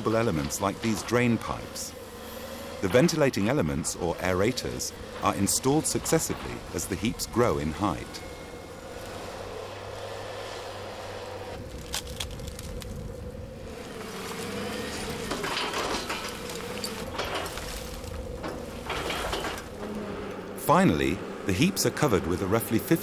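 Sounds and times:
diesel engine whining under load: 0.0 - 23.0
load knocking and rattling: 15.3 - 19.9.

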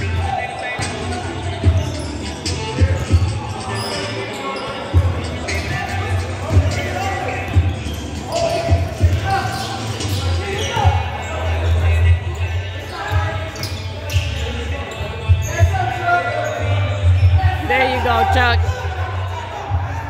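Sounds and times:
sneakers squeaking: 0.0 - 20.0
basketball bouncing on court: 7.4 - 11.0.

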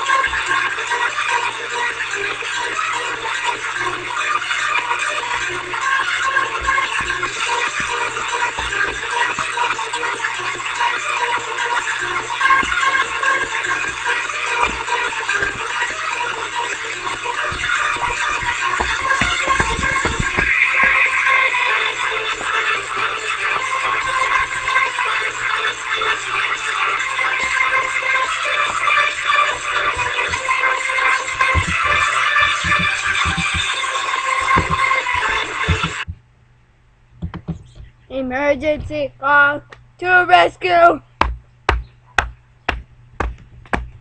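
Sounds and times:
music from small speaker: 0.0 - 36.1
sharp knocks with low thud: 17.5 - 21.0, 34.5 - 34.9, 37.2 - 37.9, 41.2 - 44.0.

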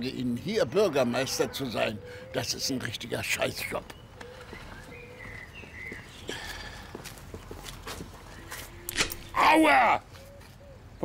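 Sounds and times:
footsteps: 3.8 - 9.3.

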